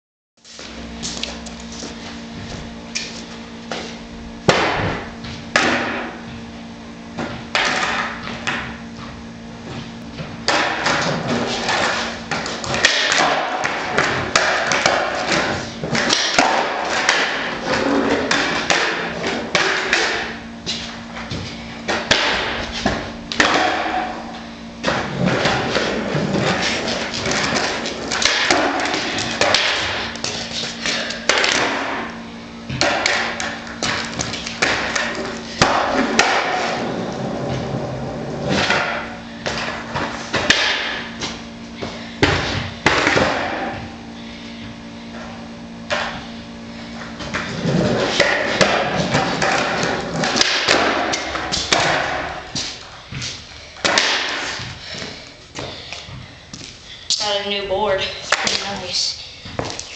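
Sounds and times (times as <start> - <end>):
skateboard wheels rolling: 10.4 - 24.2, 24.8 - 32.0, 32.7 - 41.0, 47.0 - 54.8
skateboard thudding and clacking: 21.9 - 24.2, 47.7 - 52.7.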